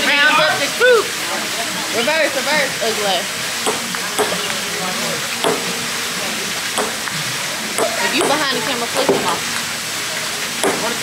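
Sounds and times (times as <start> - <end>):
ping-pong ball ticks: 3.7 - 4.4, 6.8 - 7.2.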